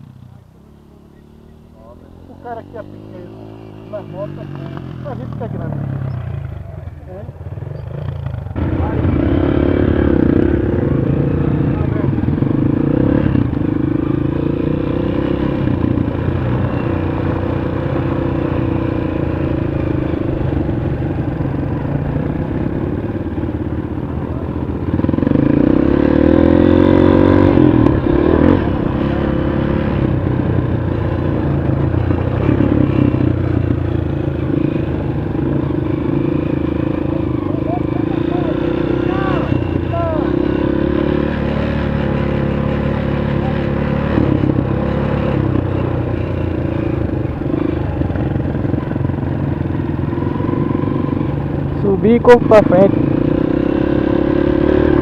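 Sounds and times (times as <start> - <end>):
dirt bike engine running: 0.0 - 55.0.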